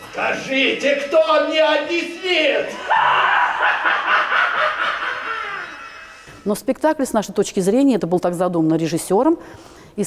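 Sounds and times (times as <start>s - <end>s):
person laughing: 2.8s - 6.2s.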